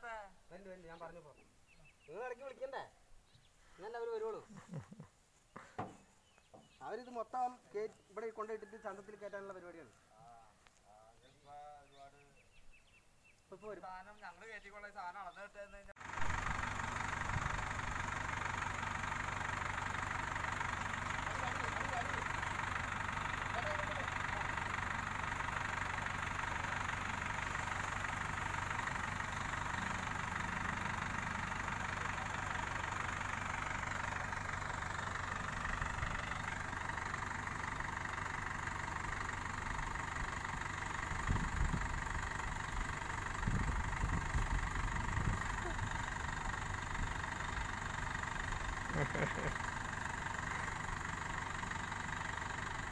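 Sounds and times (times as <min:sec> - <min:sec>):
crane diesel engine running: 0:16.0 - 0:52.9
low rumbles: 0:16.0 - 0:52.9.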